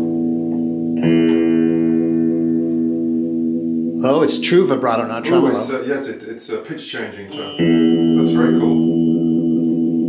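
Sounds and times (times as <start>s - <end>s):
electric guitar chord with vibrato: 0.0s - 4.0s, 7.3s - 10.0s.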